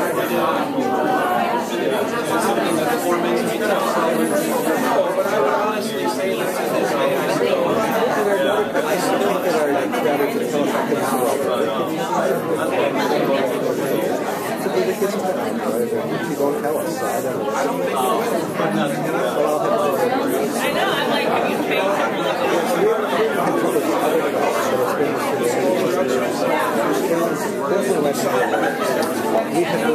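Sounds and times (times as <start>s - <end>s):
many people chatting: 0.0s - 29.9s.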